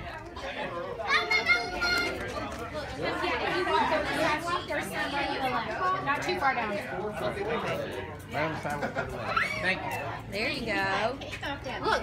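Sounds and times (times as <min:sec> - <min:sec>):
children playing and calling out: 0:00.0 - 0:02.6, 0:09.1 - 0:12.0.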